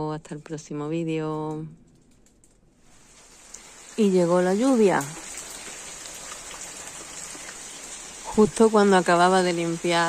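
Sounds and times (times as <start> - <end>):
rain on paved patio: 1.9 - 10.0.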